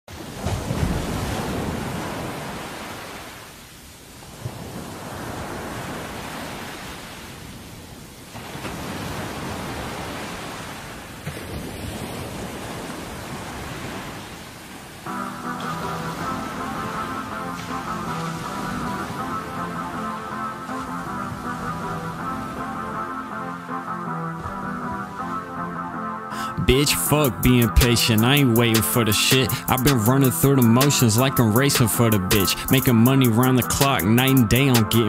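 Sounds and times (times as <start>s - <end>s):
ocean surf washing: 0.1s - 35.0s
pitched music: 15.1s - 35.0s.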